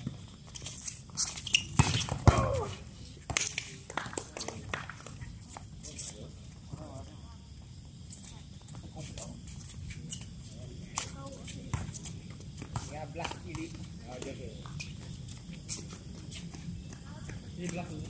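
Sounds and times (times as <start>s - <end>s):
footsteps on hard court: 0.0s - 4.5s, 10.4s - 18.0s.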